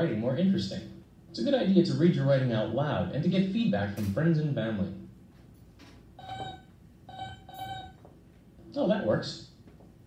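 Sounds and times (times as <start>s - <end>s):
electronic robot beeping: 6.2s - 8.0s.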